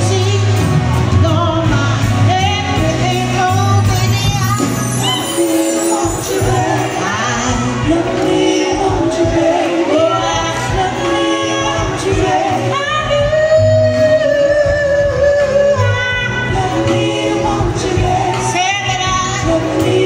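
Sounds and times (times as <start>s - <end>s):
live band playing: 0.0s - 20.0s
woman singing soul: 0.0s - 20.0s.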